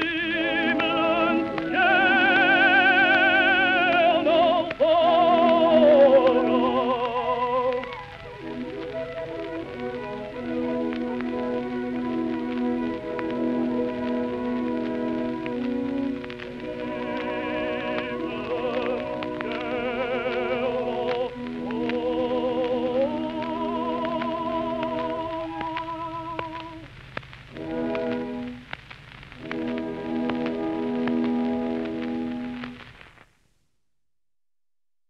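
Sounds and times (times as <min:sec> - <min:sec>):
old gramophone song recording: 0:00.0 - 0:33.4
record surface crackle: 0:00.0 - 0:33.8.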